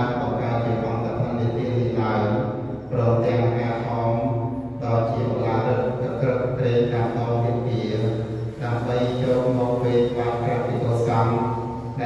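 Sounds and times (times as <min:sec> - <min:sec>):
monks chanting: 0:00.0 - 0:12.0.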